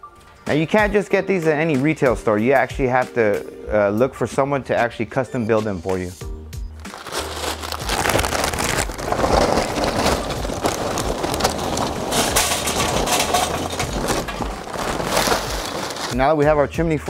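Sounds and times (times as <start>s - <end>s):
charcoal clattering into metal chimney: 7.9s - 16.2s.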